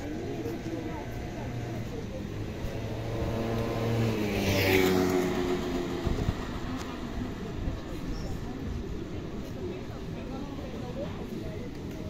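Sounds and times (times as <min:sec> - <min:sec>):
street background noise: 0:00.0 - 0:12.0
vehicle engine passing: 0:01.4 - 0:07.7.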